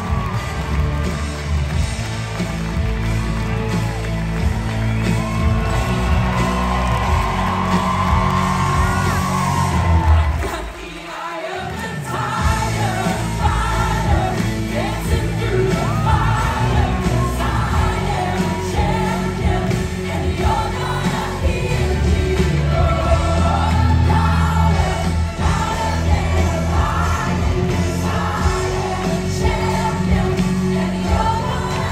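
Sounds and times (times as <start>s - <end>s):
audience cheering: 0.0s - 31.9s
cast singing with band: 8.8s - 31.9s.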